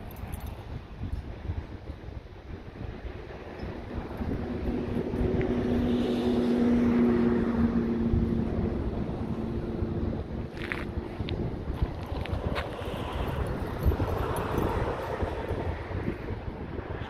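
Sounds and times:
wind buffeting microphone: 0:00.0 - 0:17.0
distant engine drone: 0:02.8 - 0:17.0.

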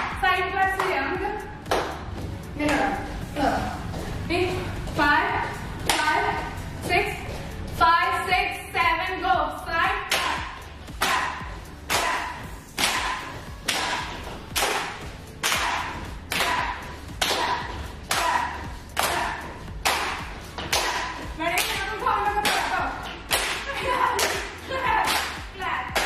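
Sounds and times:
rhythmic hand claps: 0:00.0 - 0:02.9, 0:10.1 - 0:26.0.

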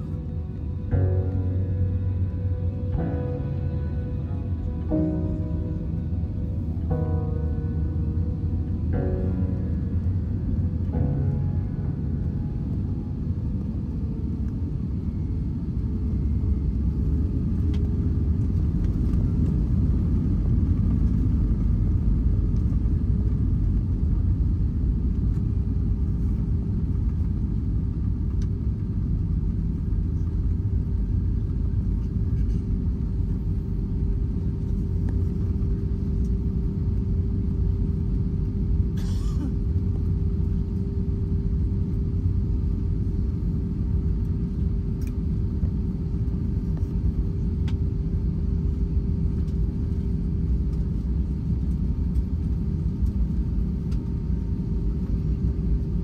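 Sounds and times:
airliner cabin rumble: 0:00.0 - 0:56.0
engine hum: 0:00.0 - 0:56.0.

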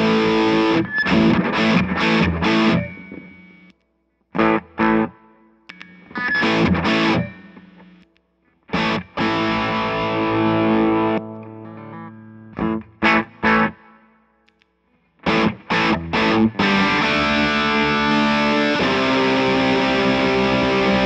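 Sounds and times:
distorted electric guitar chords: 0:00.0 - 0:03.4, 0:04.4 - 0:08.0, 0:08.6 - 0:14.1, 0:15.2 - 0:21.0.

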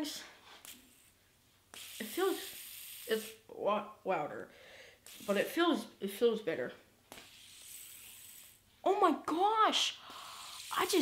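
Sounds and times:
fidget spinner whirring: 0:00.6 - 0:03.4, 0:07.1 - 0:08.6, 0:10.3 - 0:11.0.

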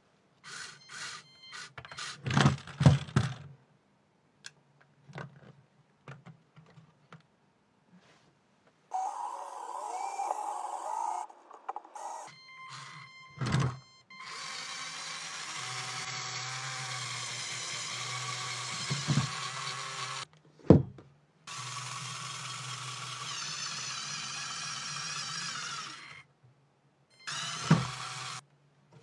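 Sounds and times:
small electric motors whirring: 0:00.5 - 0:02.2, 0:08.9 - 0:13.1, 0:14.2 - 0:20.3, 0:21.5 - 0:26.2, 0:27.2 - 0:28.4.

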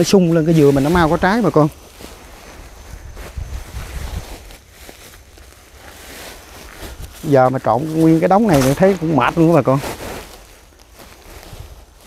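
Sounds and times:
plastic sack rustling: 0:00.0 - 0:12.0
wind buffeting microphone: 0:02.4 - 0:04.6.

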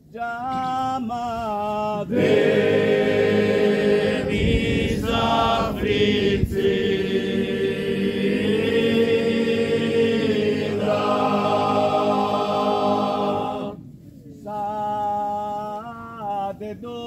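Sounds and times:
men's choir singing a cappella: 0:00.2 - 0:17.0.

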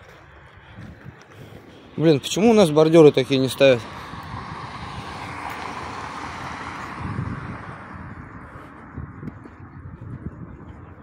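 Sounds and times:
wind on microphone: 0:00.0 - 0:01.9, 0:03.8 - 0:11.0
distant road traffic: 0:00.0 - 0:11.0.

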